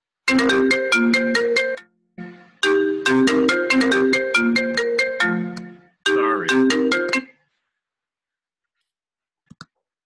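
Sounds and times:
marimba ringtone melody: 0.3 - 7.4.

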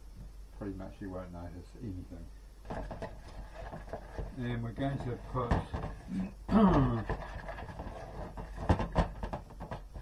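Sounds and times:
kitchenware clicking and knocking: 4.9 - 6.1, 7.1 - 10.0.

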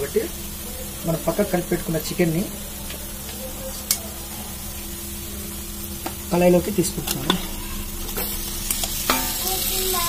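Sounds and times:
onions sizzling in hot oil: 0.0 - 10.0.

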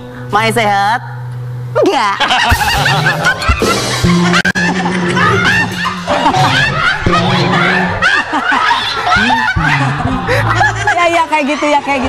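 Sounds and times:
people laughing hard: 2.0 - 12.0.

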